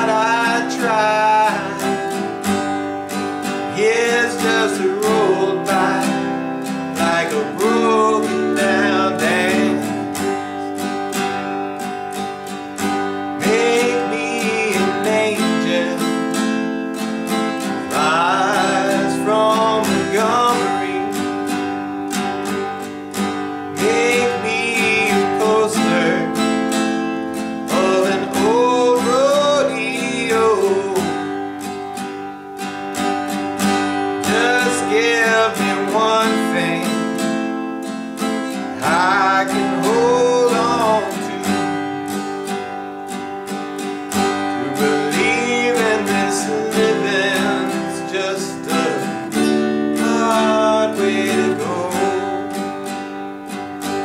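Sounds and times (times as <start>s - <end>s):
man singing: 0.0s - 11.1s, 12.9s - 22.8s, 23.6s - 31.9s, 33.7s - 37.6s, 38.4s - 42.5s, 44.3s - 53.0s
acoustic guitar strumming: 0.0s - 54.0s.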